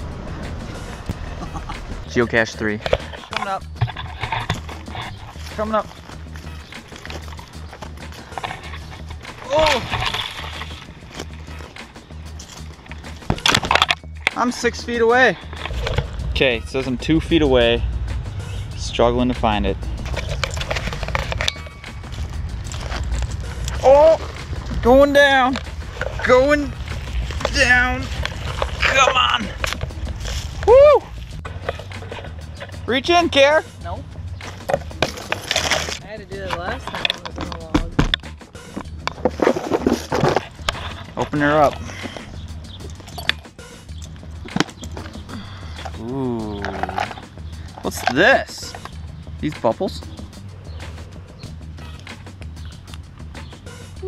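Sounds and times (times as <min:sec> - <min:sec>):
quiet background music: 0:00.0 - 0:54.0
footsteps crunching through dry leaves: 0:04.7 - 0:13.2, 0:20.0 - 0:24.9, 0:25.6 - 0:32.5.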